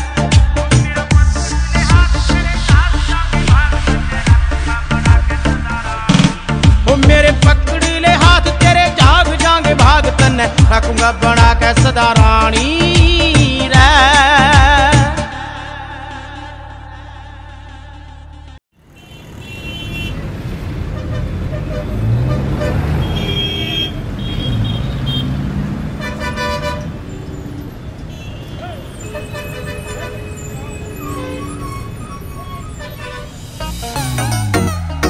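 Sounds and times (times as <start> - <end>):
song playing: 0.0 - 18.6, 29.2 - 35.0
street traffic: 0.0 - 35.0
vehicle horns tooting: 18.9 - 20.3, 20.9 - 33.7.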